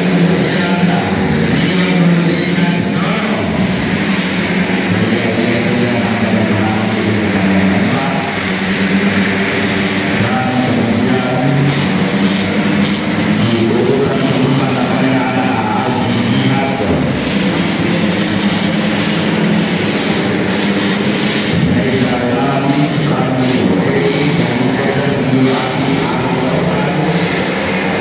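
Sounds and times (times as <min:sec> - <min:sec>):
scooter engines revving: 0:00.0 - 0:28.0.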